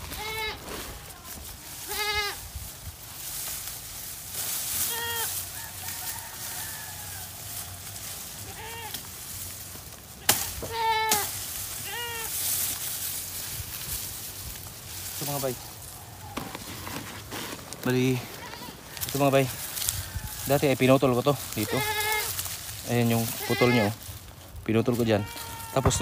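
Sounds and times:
goats bleating: 0.0s - 2.4s, 4.8s - 5.6s, 8.0s - 9.1s, 10.2s - 12.5s, 18.1s - 20.6s, 21.4s - 24.2s, 25.0s - 26.0s.

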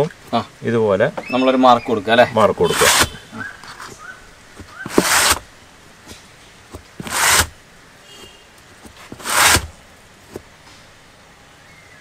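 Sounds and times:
hand rasping on rubber tyre: 2.6s - 4.0s, 4.6s - 5.4s, 6.7s - 7.6s, 8.8s - 9.8s.

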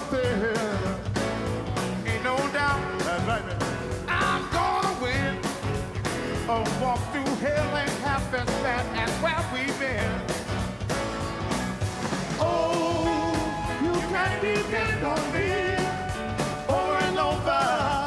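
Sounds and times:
man singing: 0.0s - 1.2s, 2.0s - 5.6s, 6.3s - 10.4s, 12.4s - 18.0s
live rock band playing: 0.0s - 18.0s
steady drum beat: 0.0s - 18.0s.

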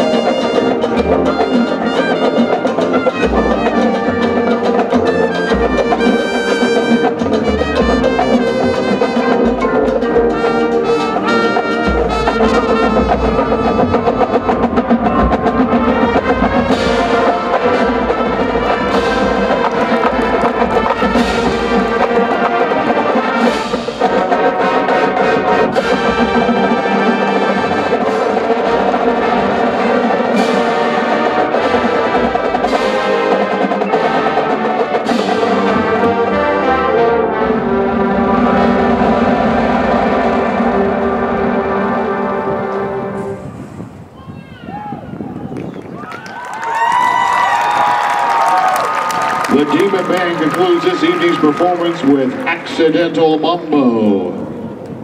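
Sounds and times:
heavy low drums: 0.0s - 44.2s
marching band playing: 0.0s - 44.2s, 46.4s - 55.0s.

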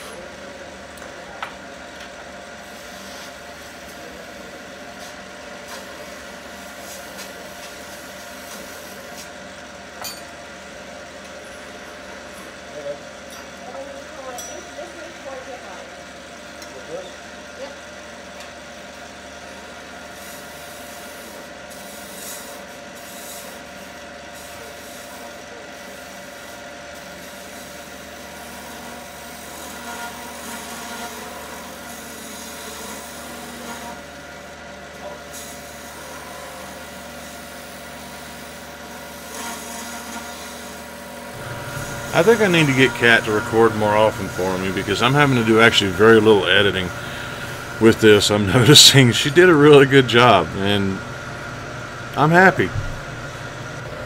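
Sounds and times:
lathe motor hum: 24.7s - 54.0s
turning tool scraping wood: 37.6s - 49.0s.

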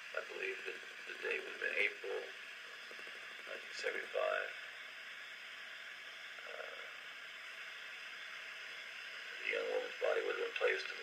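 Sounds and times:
recording hiss and static: 0.0s - 11.0s.

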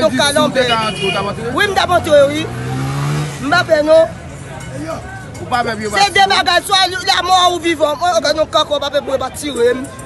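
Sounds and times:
man speaking: 0.0s - 2.5s.

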